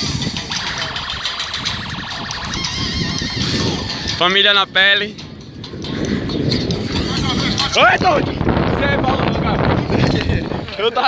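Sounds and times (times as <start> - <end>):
bicycle rattling: 0.0 - 11.0
wind rushing over microphone: 0.0 - 11.0.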